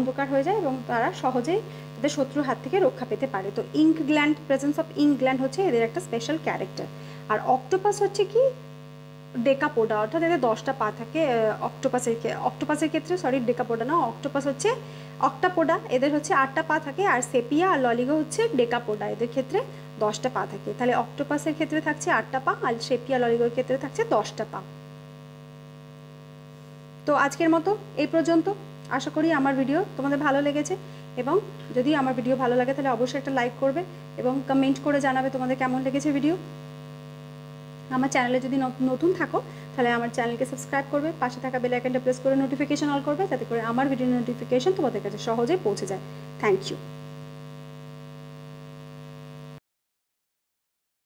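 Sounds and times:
low electrical hum: 0.0 - 49.6.

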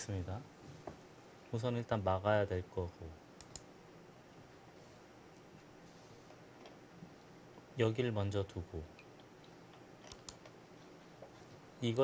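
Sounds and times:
computer mouse clicks: 3.4 - 3.7, 10.0 - 10.6.

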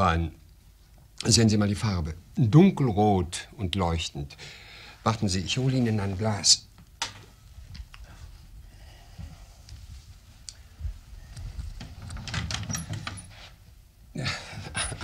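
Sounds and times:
quiet footsteps: 6.8 - 13.8
wooden cabinet opening: 11.7 - 13.3.

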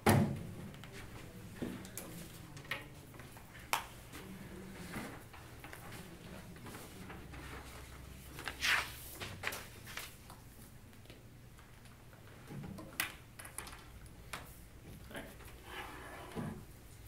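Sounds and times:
paper rustling: 4.2 - 10.5.

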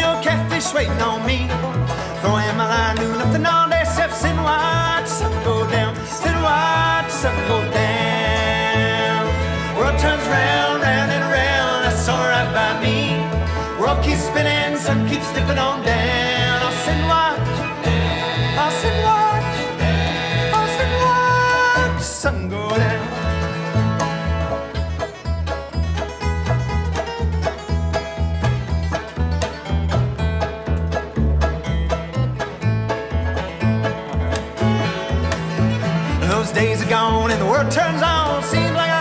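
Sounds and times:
person singing: 0.0 - 23.8, 36.0 - 39.0
bluegrass string band playing: 0.0 - 39.0
plucked banjo notes: 0.0 - 39.0
walking upright bass: 0.0 - 39.0.

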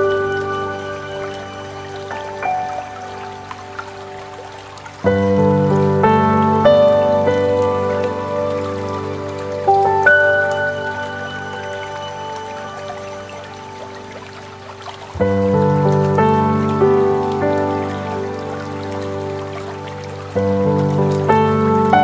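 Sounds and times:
soft sustained chords: 0.0 - 22.0.

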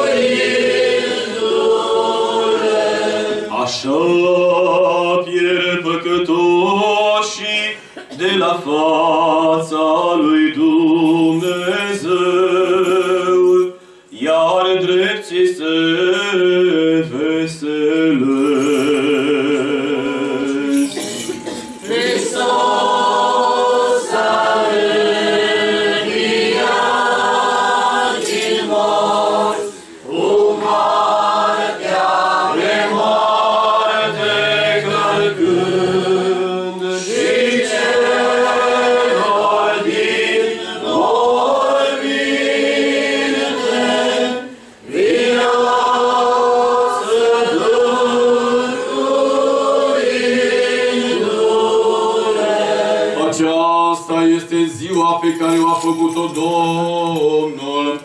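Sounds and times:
choir singing unaccompanied chant: 0.0 - 13.6, 14.2 - 58.0.

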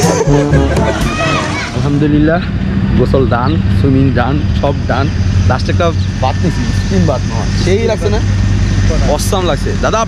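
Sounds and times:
low hum: 0.0 - 10.0
man talking: 1.7 - 10.0.

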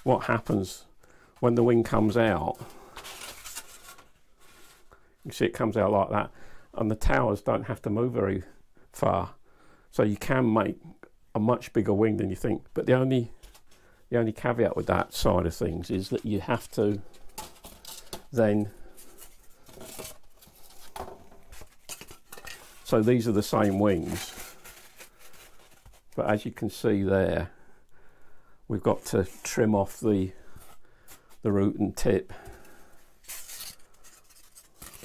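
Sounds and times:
foam pieces handled on bench: 15.9 - 26.3.

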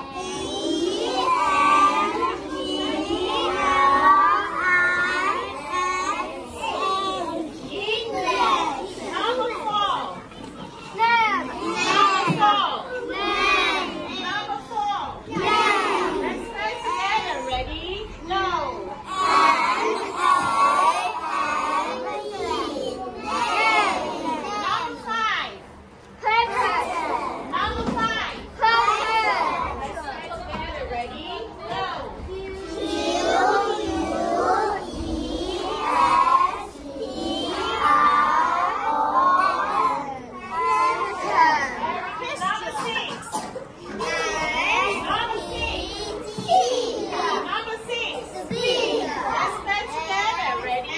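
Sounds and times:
children reading aloud and chattering: 0.0 - 50.9.

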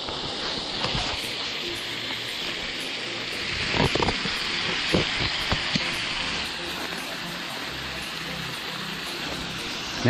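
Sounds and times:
waterfall rushing: 0.1 - 10.0.

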